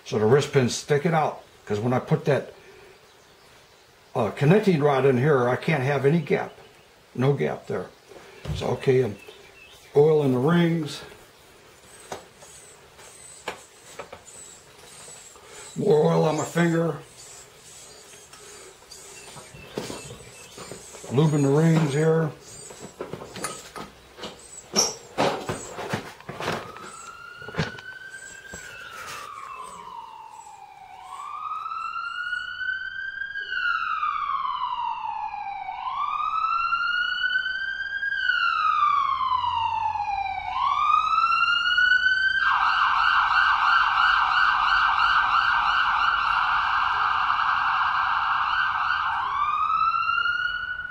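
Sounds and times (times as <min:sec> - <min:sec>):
siren wailing and yelping: 0:10.4 - 0:50.9.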